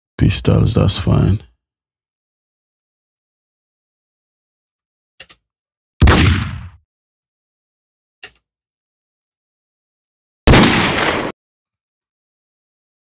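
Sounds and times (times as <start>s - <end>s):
pistol gunshots: 6.0s - 6.8s, 10.5s - 11.4s.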